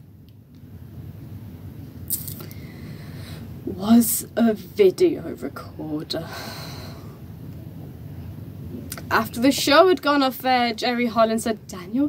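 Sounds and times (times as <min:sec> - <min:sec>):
faint background hiss: 0:00.0 - 0:12.0
steady low hum: 0:00.0 - 0:12.0.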